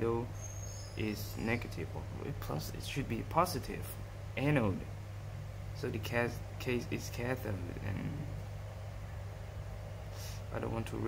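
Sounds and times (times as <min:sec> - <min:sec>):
low background hum: 0:00.0 - 0:11.0
faint even hiss: 0:10.1 - 0:11.0.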